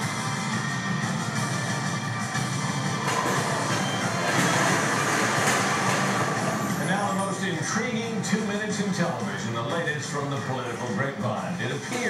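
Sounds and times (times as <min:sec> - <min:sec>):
television news music: 0:00.0 - 0:12.0.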